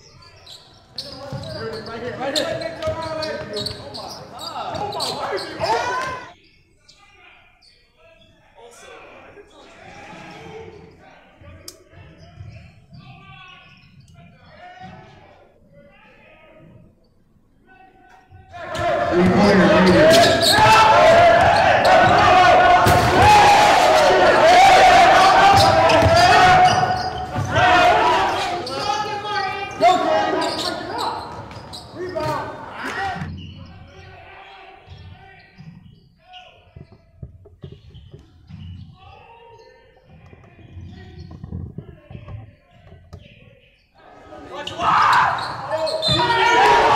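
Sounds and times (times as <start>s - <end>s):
basketball bouncing on wooden floor: 25.5s - 27.6s.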